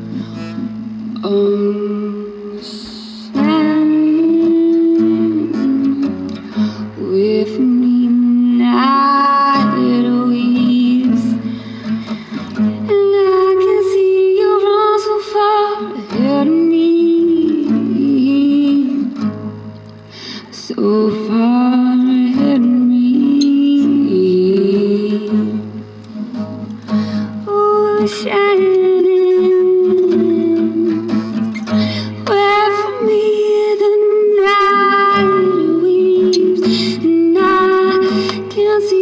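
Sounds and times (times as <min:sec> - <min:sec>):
acoustic guitar: 0:00.0 - 0:39.0.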